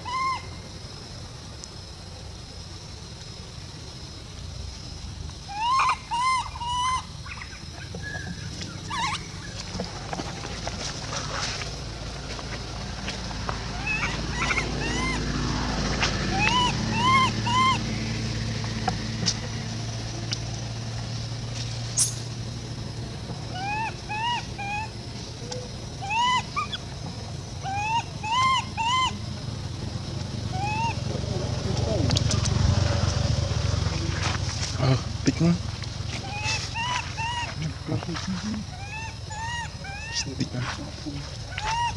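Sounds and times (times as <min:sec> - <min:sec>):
baby monkey squeaky calls: 0:00.0 - 0:00.5, 0:05.5 - 0:09.6, 0:13.7 - 0:15.2, 0:16.3 - 0:17.9, 0:23.5 - 0:24.9, 0:26.0 - 0:26.9, 0:27.6 - 0:29.2, 0:30.5 - 0:31.0, 0:36.2 - 0:37.7, 0:38.6 - 0:40.3, 0:41.4 - 0:41.9.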